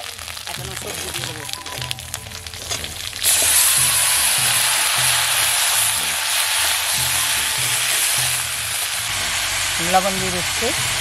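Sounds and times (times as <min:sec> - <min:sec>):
vegetables sizzling in hot oil: 0:00.0 - 0:11.0
steel spatula stirring in wok: 0:00.4 - 0:11.0.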